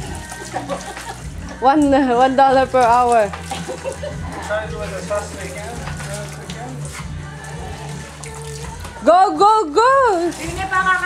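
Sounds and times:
music: 0.0s - 11.0s
water splashing from hand pump: 0.0s - 11.0s.

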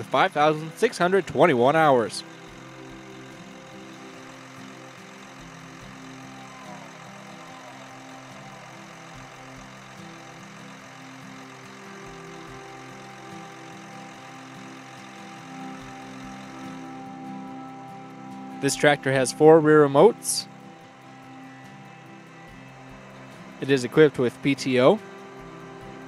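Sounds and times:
tractor diesel engine idling: 0.0s - 26.0s.

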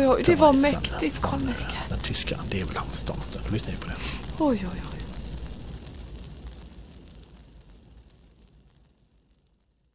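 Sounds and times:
fire crackling and popping: 0.0s - 9.9s.

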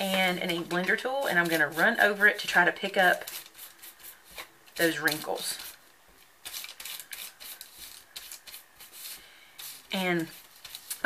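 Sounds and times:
foam tool scratching paper: 1.2s - 5.8s, 6.4s - 11.0s.

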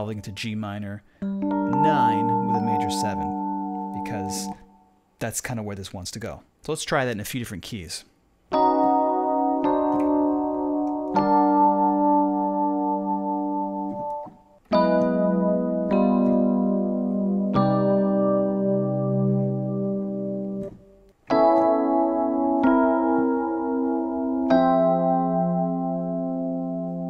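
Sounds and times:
electric piano chords: 0.0s - 5.0s, 8.5s - 27.0s.

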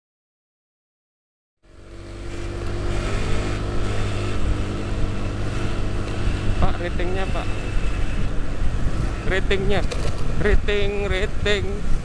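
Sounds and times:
road and wind noise: 1.6s - 12.0s
scooter engine running: 1.6s - 12.0s.

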